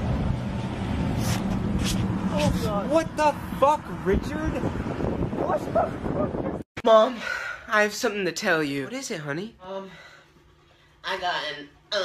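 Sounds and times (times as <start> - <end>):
low outdoor rumble with hum: 0.0 - 6.6, 7.4 - 12.0.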